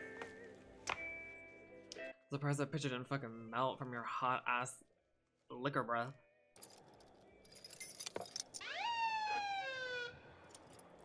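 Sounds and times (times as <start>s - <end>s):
keys jingling: 6.6s - 8.6s, 10.5s - 11.0s
police siren wailing: 8.6s - 10.4s.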